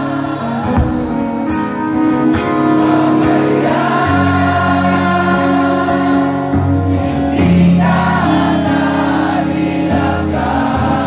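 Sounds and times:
audience singing along: 0.0s - 11.0s
man singing with acoustic guitar: 0.0s - 11.0s.

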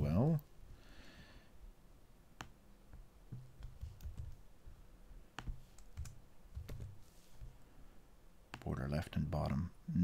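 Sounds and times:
keyboard and mouse clicks: 2.4s - 4.4s, 5.3s - 7.5s.

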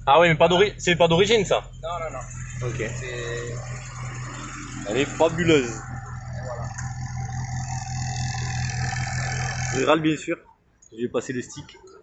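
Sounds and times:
car engine idling: 0.0s - 10.7s.

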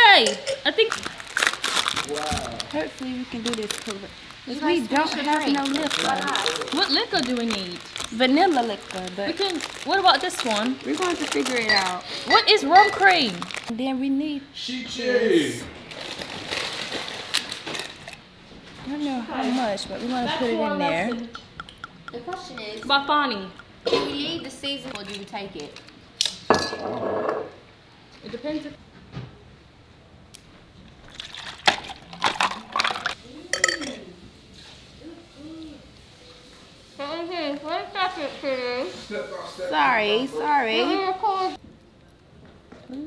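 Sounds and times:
pouring between cups: 31.0s - 34.0s
bottle handling: 31.6s - 34.0s.

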